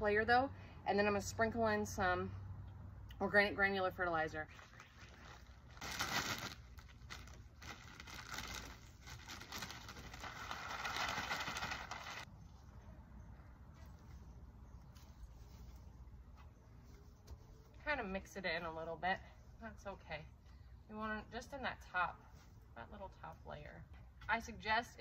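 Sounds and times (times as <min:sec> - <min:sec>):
plastic bag rustling: 0:04.5 - 0:12.3.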